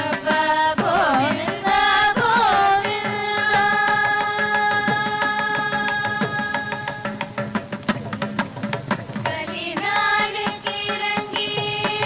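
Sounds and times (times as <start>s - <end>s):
hand drum strokes: 0.0s - 12.0s.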